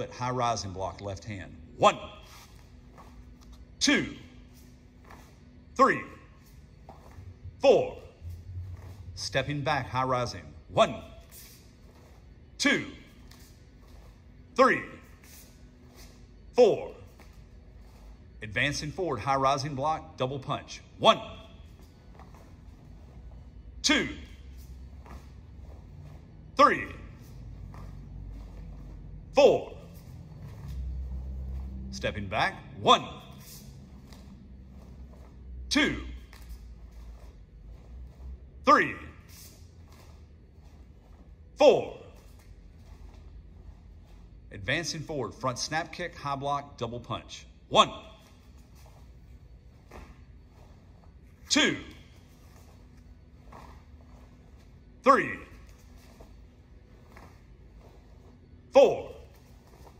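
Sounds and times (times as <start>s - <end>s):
man calling out a count: 0.0s - 2.2s, 3.7s - 4.4s, 5.7s - 6.4s, 7.6s - 8.2s, 9.2s - 11.2s, 12.6s - 13.2s, 14.5s - 15.1s, 16.5s - 17.1s, 18.4s - 21.6s, 23.8s - 24.4s, 26.5s - 27.2s, 29.3s - 29.9s, 31.9s - 33.4s, 35.7s - 36.3s, 38.6s - 39.3s, 41.5s - 42.3s, 44.5s - 48.2s, 51.4s - 52.1s, 55.0s - 55.7s, 58.7s - 59.3s
steady low room hum: 0.0s - 59.9s
bare feet on foam mats: 1.8s - 19.6s, 21.0s - 46.1s, 47.8s - 59.9s
bare feet scuffing on mats: 2.2s - 3.7s, 4.4s - 5.7s, 6.4s - 7.6s, 8.2s - 9.6s, 24.4s - 26.4s, 48.3s - 54.9s, 55.6s - 58.5s.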